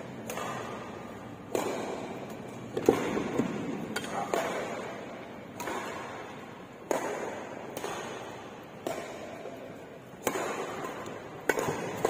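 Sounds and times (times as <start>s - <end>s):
racket hitting shuttlecock: 0.0s - 12.0s.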